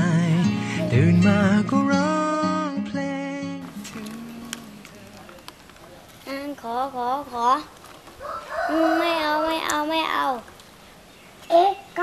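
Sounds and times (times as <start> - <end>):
child's drawn-out hum: 0.7 - 1.1.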